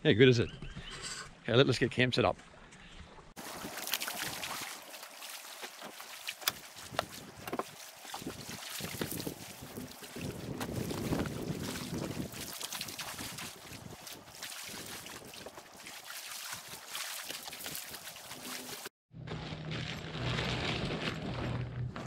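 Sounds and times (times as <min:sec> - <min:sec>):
light splashes and knocks: 0:02.3 - 0:18.9
small waves lapping: 0:02.4 - 0:18.9
wind buffeting microphone: 0:08.1 - 0:15.3.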